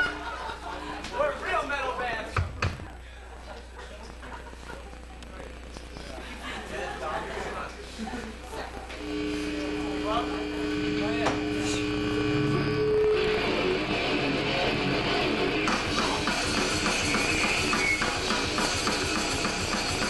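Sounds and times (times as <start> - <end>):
drums: 2.3 - 3.0, 12.6 - 20.0
distorted guitar: 4.1 - 6.7, 8.3 - 20.0
electric guitar ringing notes: 9.0 - 17.8.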